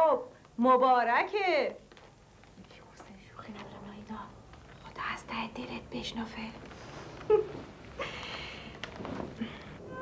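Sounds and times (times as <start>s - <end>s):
women whispering: 2.6s - 6.6s.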